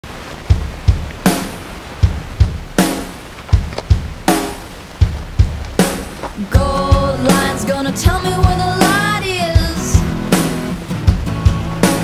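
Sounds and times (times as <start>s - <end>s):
drum beat: 0.1s - 12.0s.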